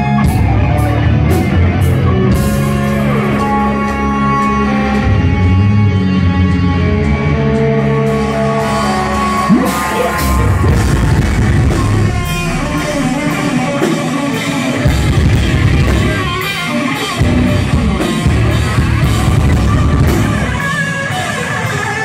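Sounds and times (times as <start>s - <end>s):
bass guitar: 0.0s - 22.0s
distorted electric guitars: 0.0s - 22.0s
drum kit: 0.0s - 22.0s.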